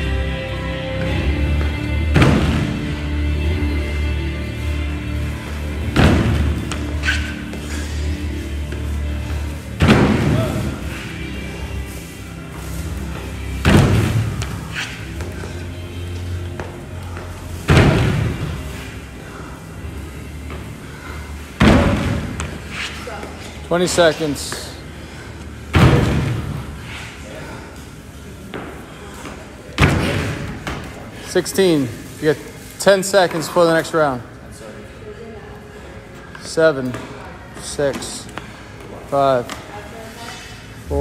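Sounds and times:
background music: 0:00.0 - 0:28.4
feet thumping on wooden box: 0:01.0 - 0:03.0, 0:05.4 - 0:07.7, 0:08.7 - 0:10.9, 0:12.5 - 0:15.6, 0:21.6 - 0:22.7.

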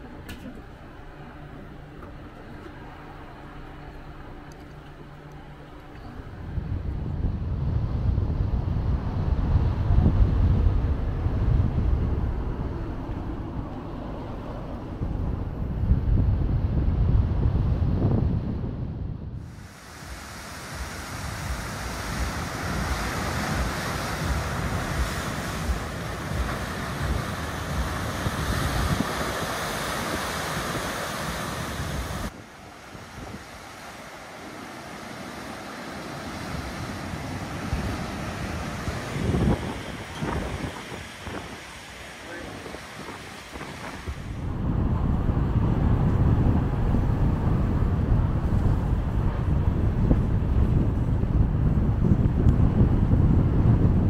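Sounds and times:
wind rumbling on microphone: 0:00.0 - 0:54.0
sea surf rushing into rock inlet: 0:19.4 - 0:50.9
waves breaking on rocky shore: 0:19.5 - 0:44.5.

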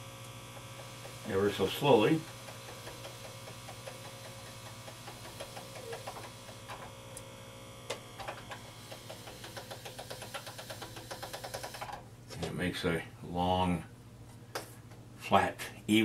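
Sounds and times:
steady electrical hum: 0:00.0 - 0:16.0
pasta machine crank ticking: 0:00.6 - 0:06.9, 0:08.2 - 0:12.0.

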